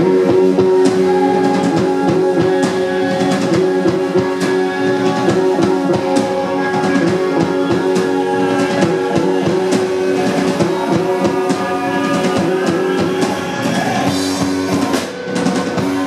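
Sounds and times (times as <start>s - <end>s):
drum kit steady beat: 0.0s - 16.0s
sustained guitar: 0.0s - 16.0s.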